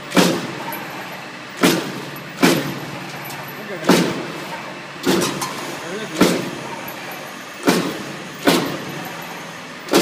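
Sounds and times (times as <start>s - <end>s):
cutting machine punching strokes: 0.0s - 0.8s, 1.5s - 3.1s, 3.8s - 10.0s
steady machine hum: 0.0s - 10.0s.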